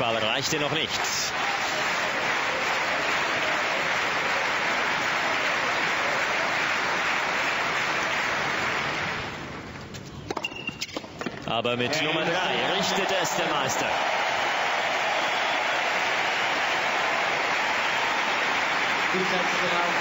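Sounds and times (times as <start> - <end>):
crowd applauding: 0.0 - 9.5, 11.8 - 20.0.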